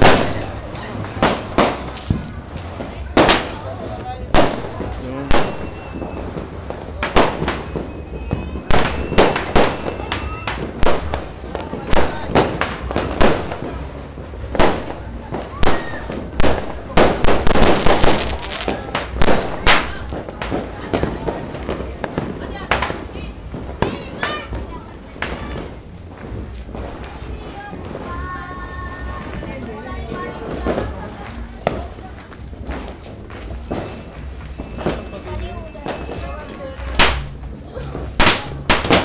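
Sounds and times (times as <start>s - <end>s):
firecrackers and fireworks banging: 0.0s - 39.0s
rapid crackling: 16.4s - 20.6s.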